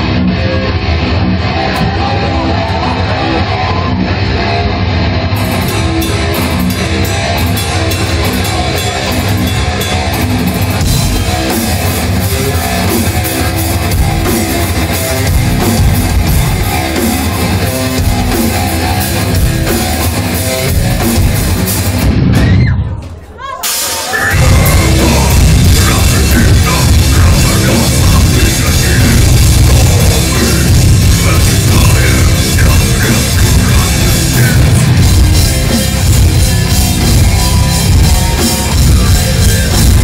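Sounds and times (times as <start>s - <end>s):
electric guitars: 0.0s - 22.7s, 23.7s - 40.0s
drums and cymbals: 5.4s - 22.7s, 23.6s - 40.0s.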